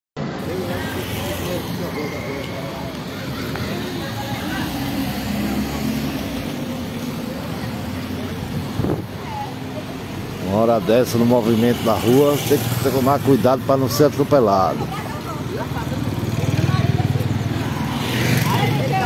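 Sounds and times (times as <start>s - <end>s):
cars and motorcycles passing: 0.2s - 19.0s
people talking indistinctly: 0.4s - 19.0s.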